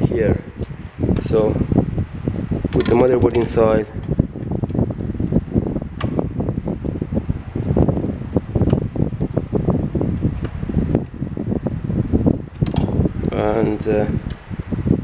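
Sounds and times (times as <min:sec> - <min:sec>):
tool rattling against metal frame: 0:02.7 - 0:04.1.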